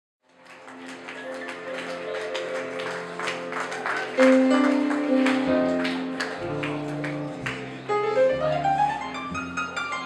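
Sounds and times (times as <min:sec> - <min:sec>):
audience applause: 0:00.2 - 0:07.9
swing band playing: 0:04.1 - 0:10.0.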